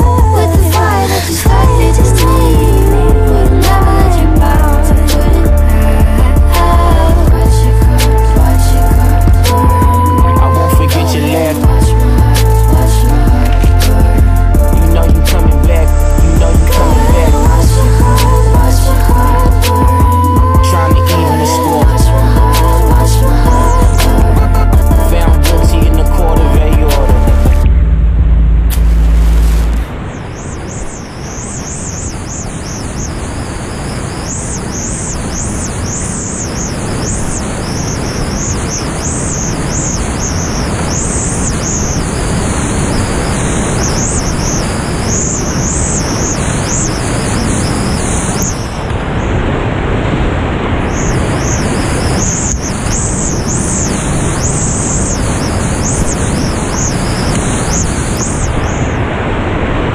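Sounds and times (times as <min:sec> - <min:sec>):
low background music: 0:00.0 - 0:29.9.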